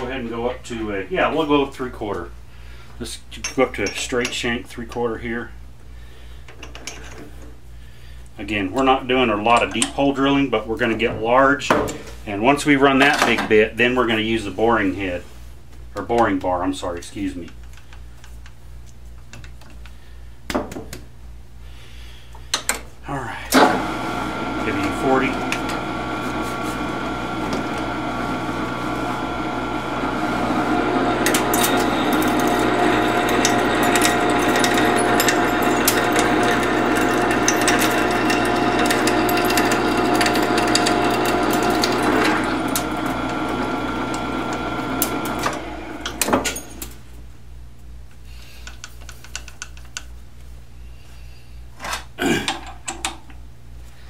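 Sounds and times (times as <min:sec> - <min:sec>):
metal lathe gear whine: 0:23.6 - 0:46.8
drill bit cutting aluminium: 0:30.0 - 0:46.2.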